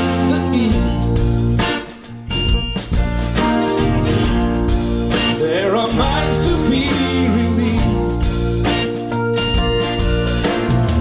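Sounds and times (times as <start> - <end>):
live band playing instrumental: 0.0 - 11.0.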